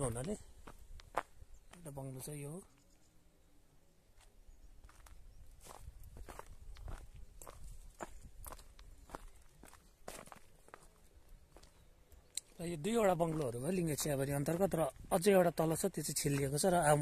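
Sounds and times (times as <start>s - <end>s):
faint footsteps walking: 0.0s - 2.2s, 4.1s - 17.0s.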